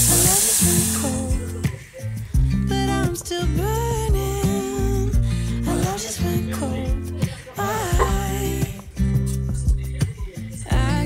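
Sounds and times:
water poured from kettle: 0:00.0 - 0:01.2
rice hissing and sizzling: 0:00.0 - 0:01.4
pop song with singing: 0:00.0 - 0:11.0.

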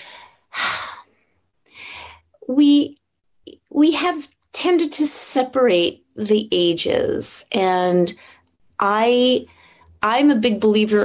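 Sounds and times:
person breathing audibly: 0:00.0 - 0:02.4.

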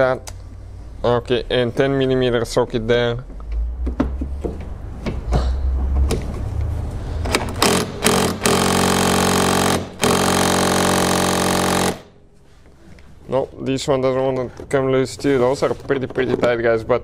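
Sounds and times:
hand tools clicking on bolts: 0:07.2 - 0:12.0
power tool buzzing: 0:07.6 - 0:12.2.

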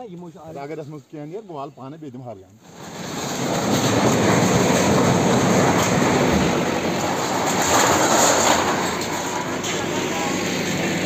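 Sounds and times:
diesel engine under load: 0:02.7 - 0:11.0
metal sheeting crumpling and scraping: 0:02.7 - 0:11.0.

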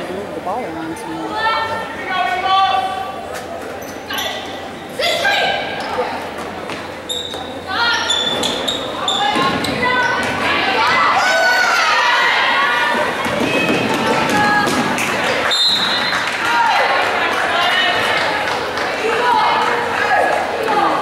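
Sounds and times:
sneakers squeaking: 0:03.3 - 0:04.7, 0:05.6 - 0:11.1.

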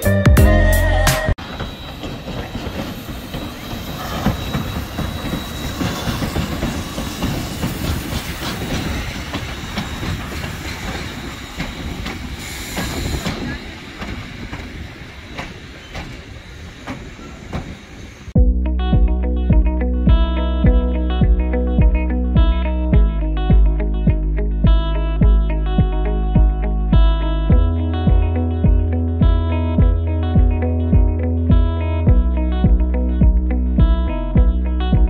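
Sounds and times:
train rumbling: 0:00.6 - 0:18.4
wheels clacking over rail joints: 0:01.4 - 0:18.1
guitar music: 0:18.4 - 0:35.0.

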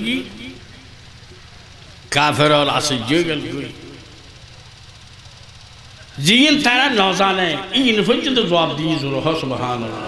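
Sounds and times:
low mechanical hum: 0:00.0 - 0:10.0.

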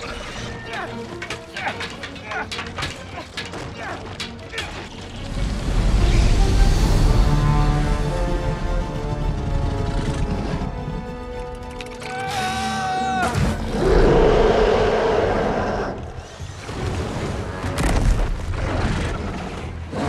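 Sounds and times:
film score music: 0:00.0 - 0:20.0.

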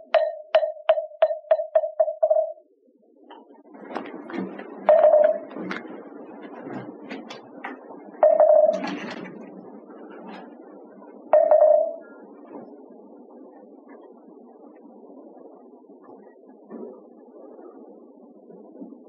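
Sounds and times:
wooden percussion knocks: 0:00.0 - 0:02.6, 0:03.9 - 0:05.9, 0:08.2 - 0:09.2, 0:11.4 - 0:12.0
shuffle and rustle of people: 0:03.6 - 0:08.1
wooden percussion roll: 0:03.9 - 0:09.4, 0:11.4 - 0:12.0.

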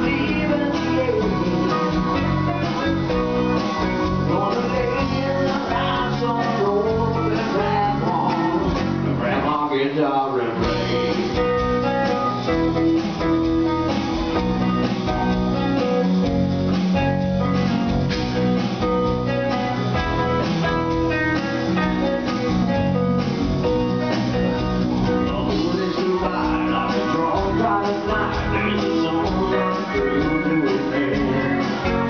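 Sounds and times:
electric guitar: 0:00.0 - 0:09.5, 0:10.4 - 0:32.0
live rock band playing: 0:00.0 - 0:32.0.

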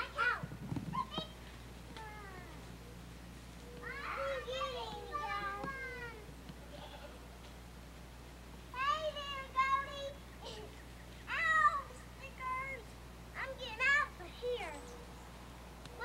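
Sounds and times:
children calling and chattering: 0:00.0 - 0:07.7, 0:08.5 - 0:16.0
steady low hum: 0:00.0 - 0:16.0.

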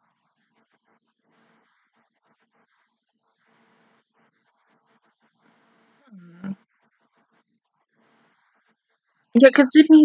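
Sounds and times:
woman humming grunt: 0:06.1 - 0:06.6.

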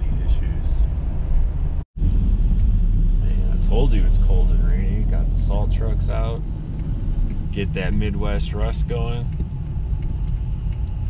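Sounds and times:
car engine and tyre rumble: 0:00.0 - 0:11.0.

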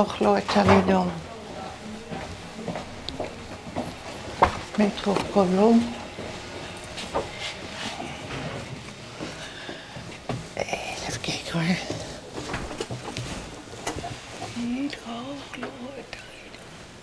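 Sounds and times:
faint voices murmuring: 0:00.0 - 0:16.6
sharp clicks and knocks: 0:11.9 - 0:14.6.

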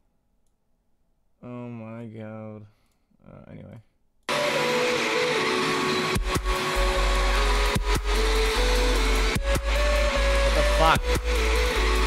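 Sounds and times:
noisy synth layers: 0:04.3 - 0:12.0
deep sub-bass: 0:06.2 - 0:12.0.

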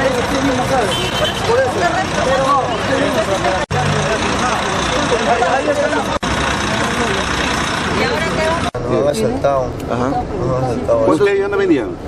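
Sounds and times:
bus engine running: 0:00.0 - 0:12.0
people talking: 0:00.0 - 0:12.0.

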